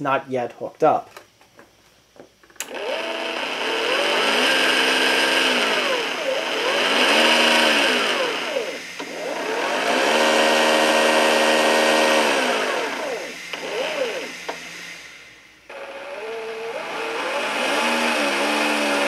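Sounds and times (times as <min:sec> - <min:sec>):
fan motor whining: 0:02.6 - 0:19.0.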